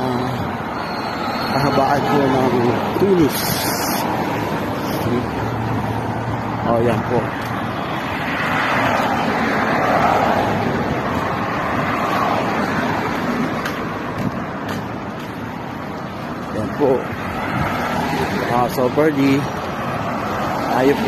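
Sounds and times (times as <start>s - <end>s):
cars driving past: 0.0s - 21.0s.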